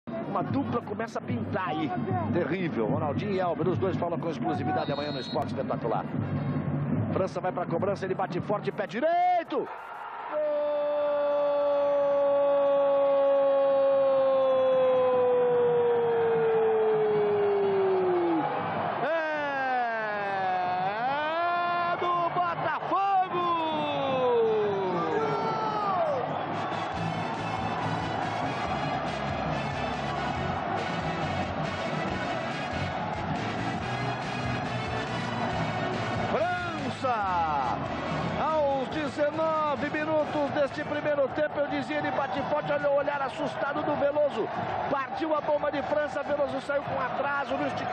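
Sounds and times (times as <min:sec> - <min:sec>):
music: 0:00.1 - 0:10.0, 0:11.2 - 0:47.9
stadium crowd noise: 0:00.1 - 0:47.9
commentator shouting: 0:19.0 - 0:26.2.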